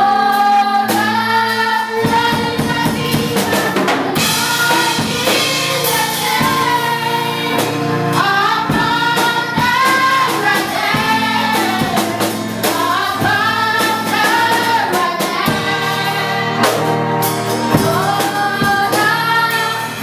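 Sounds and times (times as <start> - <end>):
woman singing into microphone: 0.0 - 16.7, 17.7 - 20.0
girls choir singing gospel: 0.0 - 20.0
drum kit beat: 1.9 - 20.0.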